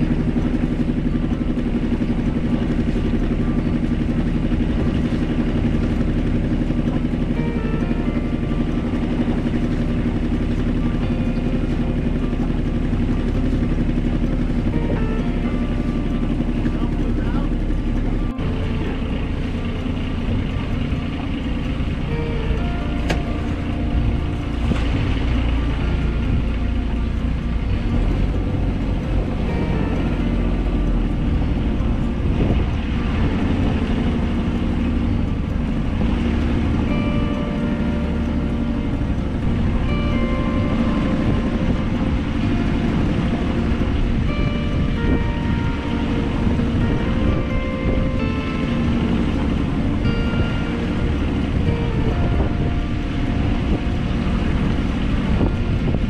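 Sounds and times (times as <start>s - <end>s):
boat engine running: 0.0s - 56.0s.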